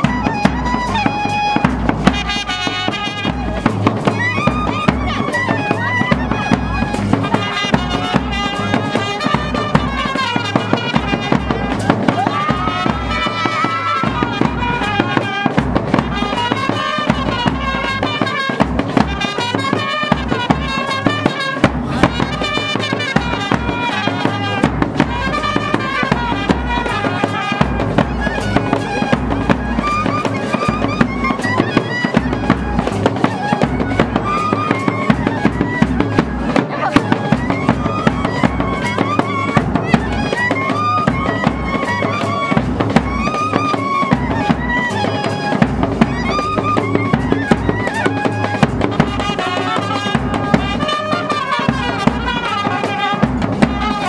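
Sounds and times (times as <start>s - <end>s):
fast busy percussion: 0.0s - 54.0s
trumpet melody: 0.0s - 54.0s.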